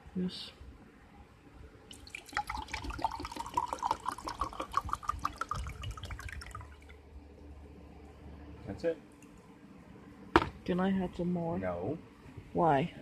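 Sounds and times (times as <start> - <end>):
coffee pouring into a mug: 1.9 - 6.9.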